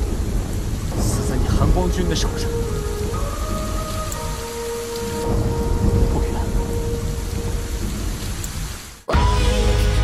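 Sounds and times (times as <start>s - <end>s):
low rumble of thunder: 0.0s - 8.8s
heavy rain pouring: 0.0s - 10.0s.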